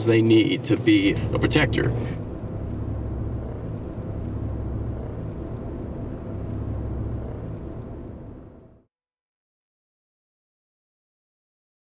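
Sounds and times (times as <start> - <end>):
vehicle rumble: 0.0 - 8.9.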